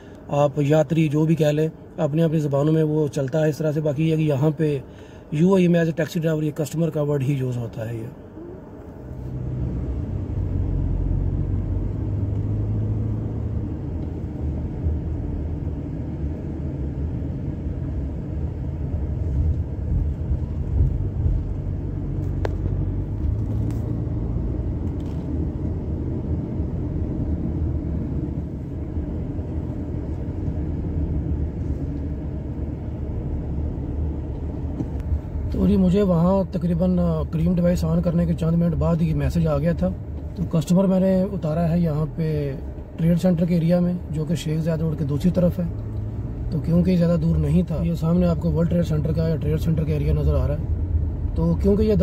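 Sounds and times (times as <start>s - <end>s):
road and engine rumble: 0.0s - 52.0s.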